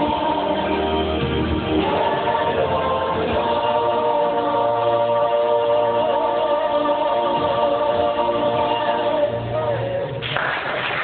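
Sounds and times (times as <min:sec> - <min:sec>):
mixed choir singing chords: 0:00.0 - 0:10.2.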